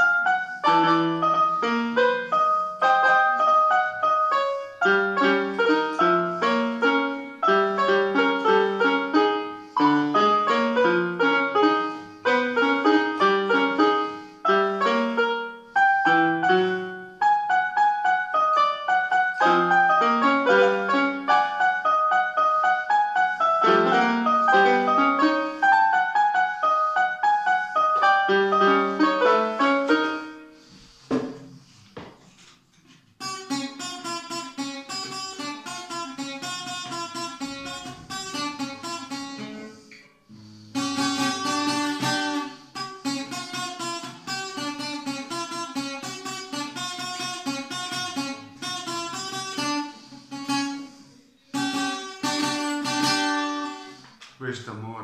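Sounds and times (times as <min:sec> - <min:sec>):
acoustic guitar chords: 0:00.0 - 0:30.7, 0:33.2 - 0:54.6
electronic keyboard piano melody: 0:00.0 - 0:30.8, 0:40.8 - 0:50.0.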